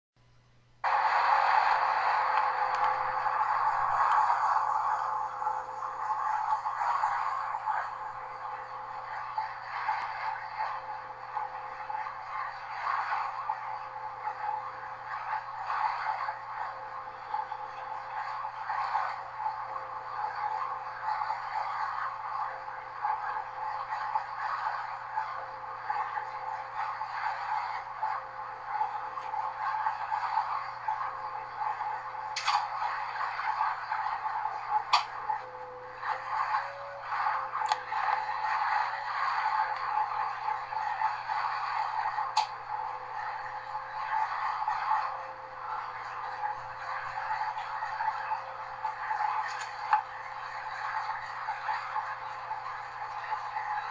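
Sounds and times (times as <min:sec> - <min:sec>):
thin wavering whine: 0:00.2 - 0:53.9
train running noise: 0:00.2 - 0:53.9.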